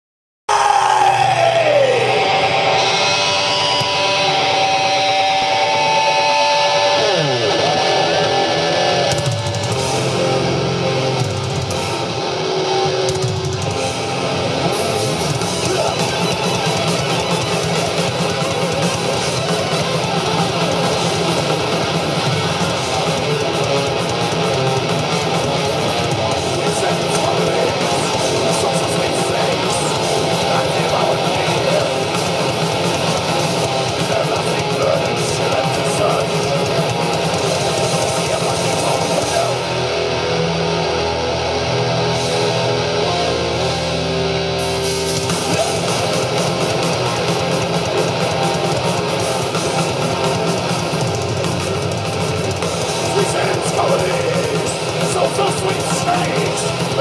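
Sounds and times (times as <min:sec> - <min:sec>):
metal band playing live: 0:00.5 - 0:57.0.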